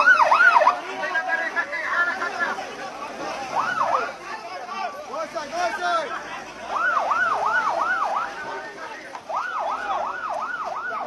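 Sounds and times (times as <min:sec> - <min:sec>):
ambulance siren yelping: 0:00.0 - 0:00.9, 0:03.3 - 0:04.2, 0:06.4 - 0:11.0.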